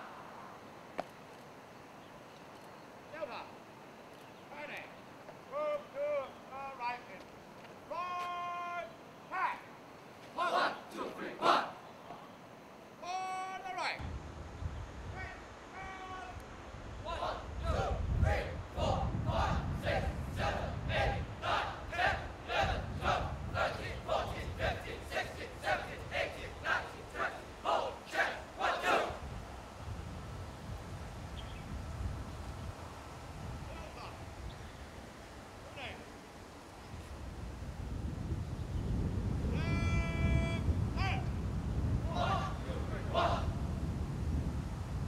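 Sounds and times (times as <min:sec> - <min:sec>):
person shouting drill commands: 0:07.9 - 0:09.7
boys shouting in unison: 0:17.1 - 0:29.2, 0:42.1 - 0:43.5.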